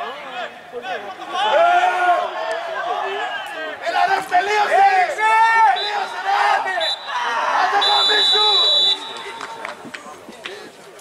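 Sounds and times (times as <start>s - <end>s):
distant players calling out: 0.2s - 10.8s.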